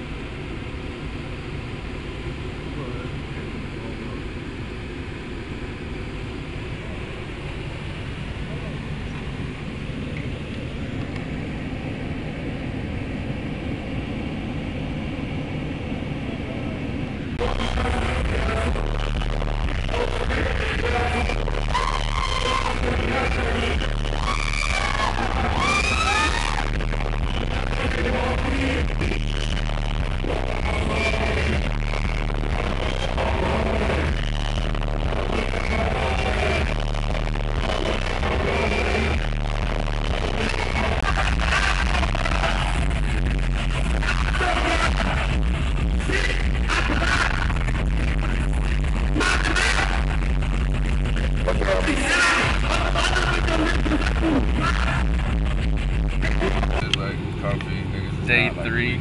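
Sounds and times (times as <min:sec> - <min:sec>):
vehicle cabin rumble: 0:00.0 - 0:59.0
hip-hop music with heavy bass: 0:17.0 - 0:59.0
person rapping: 0:17.4 - 0:43.2, 0:43.8 - 0:50.2, 0:51.2 - 0:55.2.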